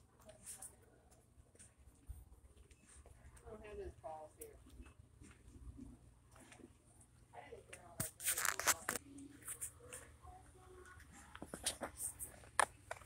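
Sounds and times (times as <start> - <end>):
faint voices: 5.6 - 12.6.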